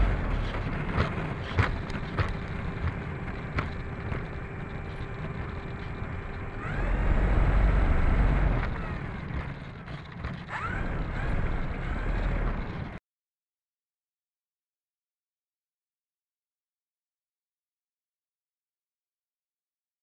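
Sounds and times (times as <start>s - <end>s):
electric motor and propeller whirring: 0.0s - 13.0s
wheels knocking over pavement joints: 0.0s - 13.0s.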